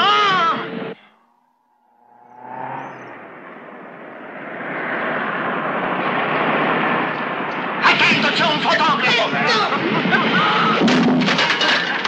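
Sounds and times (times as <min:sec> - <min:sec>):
car engine and rolling noise: 0:00.0 - 0:12.0.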